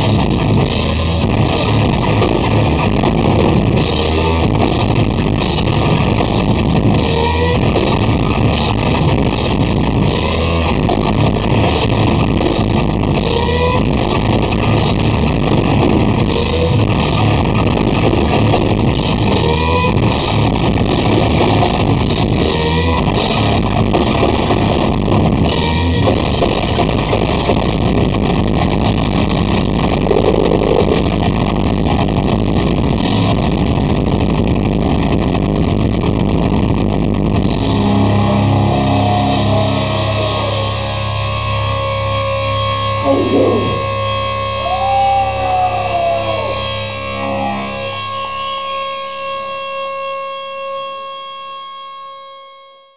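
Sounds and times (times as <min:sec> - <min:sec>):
ringing guitar chords: 0:00.0 - 0:35.6, 0:36.2 - 0:52.8
heavy metal band playing live: 0:00.0 - 0:48.8.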